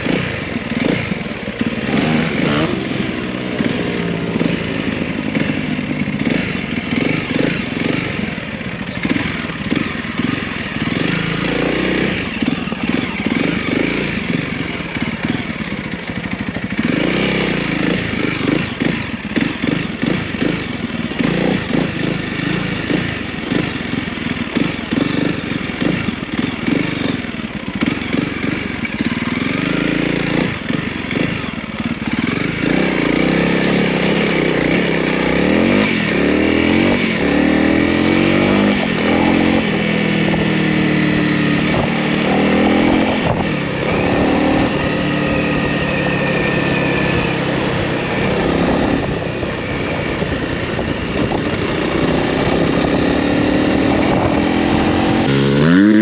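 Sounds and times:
motorcycle engine running: 0:00.0 - 0:56.0.

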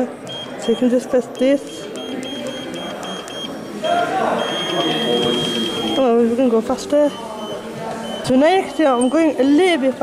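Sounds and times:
treadmill console beeping: 0:00.3 - 0:06.2, 0:07.0 - 0:09.6.

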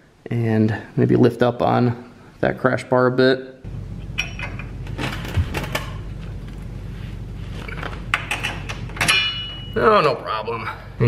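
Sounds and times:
steady low hum: 0:03.6 - 0:11.0
metal clicks and knocks: 0:08.1 - 0:09.5.

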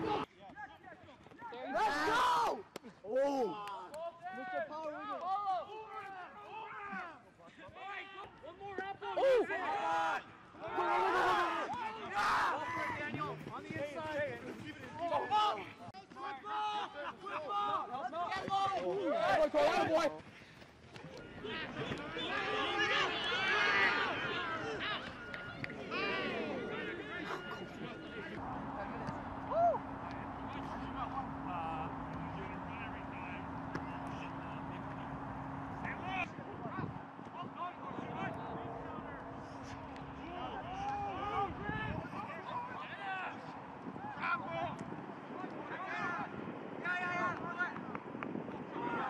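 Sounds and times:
people shouting and cheering: 0:01.4 - 0:07.2, 0:07.8 - 0:13.4, 0:21.2 - 0:47.8, 0:48.6 - 0:49.0
low hum: 0:24.4 - 0:44.2.

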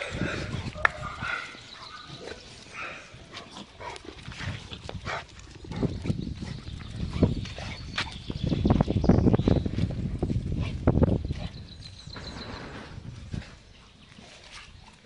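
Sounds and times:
dog paws on brick paving: 0:00.0 - 0:12.0, 0:13.2 - 0:15.0.

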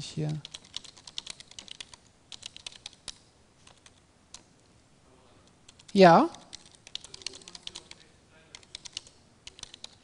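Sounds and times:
typing on computer keyboard: 0:00.3 - 0:04.5, 0:05.6 - 0:10.0.

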